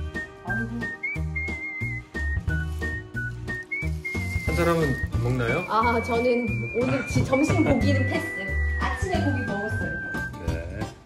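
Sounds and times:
whistle-like melody: 0:00.0 - 0:10.7
bouncing bass line: 0:05.0 - 0:10.6.

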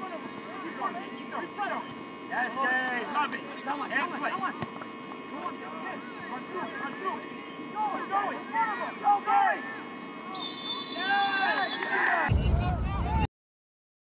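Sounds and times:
distant shouts of players: 0:05.2 - 0:13.1.

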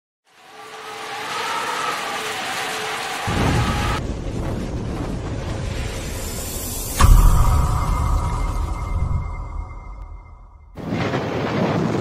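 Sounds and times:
deep thunder rumble: 0:03.3 - 0:12.0.

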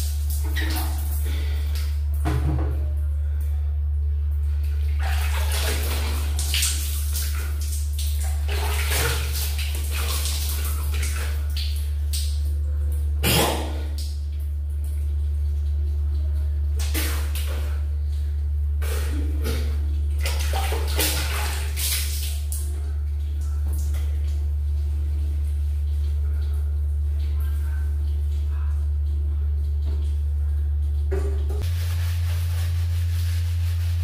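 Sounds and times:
steady low hum: 0:00.0 - 0:34.0
water splashing on skin: 0:04.7 - 0:12.6, 0:13.6 - 0:17.8, 0:18.8 - 0:30.2.

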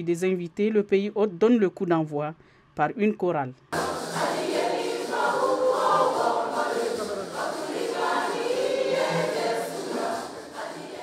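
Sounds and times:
women's choir singing: 0:03.8 - 0:11.0.

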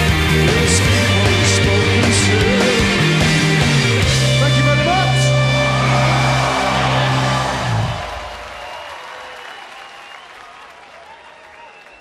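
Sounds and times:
live rock band: 0:00.0 - 0:08.4
crowd applauding and cheering: 0:04.5 - 0:12.0.

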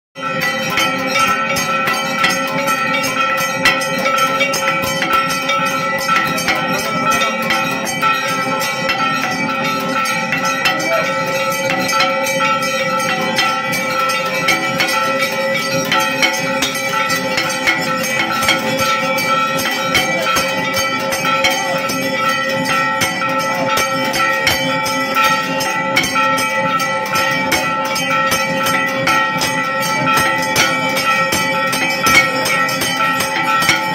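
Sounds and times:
temple bells ringing: 0:00.2 - 0:33.9.

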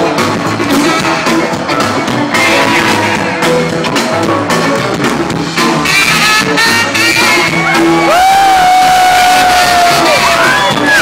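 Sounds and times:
crowd noise: 0:00.0 - 0:11.0
live rock band music: 0:00.0 - 0:11.0
person whooping: 0:08.0 - 0:11.0.

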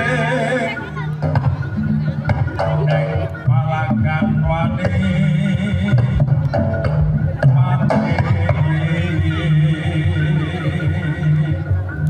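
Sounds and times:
high wavering voice: 0:00.0 - 0:06.7
gamelan over loudspeakers: 0:00.0 - 0:12.0.

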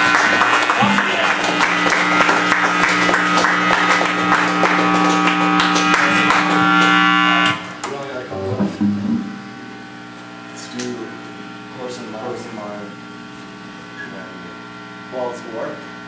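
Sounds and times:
scattered room noises: 0:00.0 - 0:14.5
droning electric guitar: 0:00.0 - 0:16.0
rapid drum and cymbal hits: 0:00.8 - 0:03.1.

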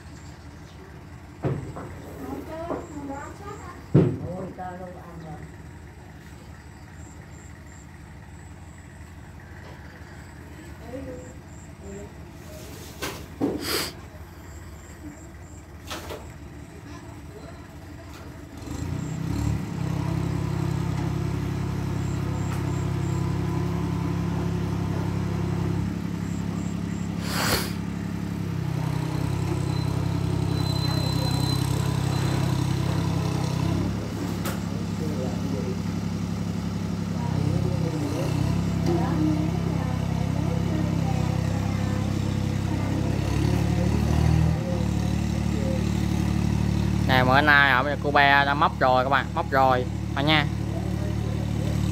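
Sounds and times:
tractor engine under load: 0:00.0 - 0:51.9.

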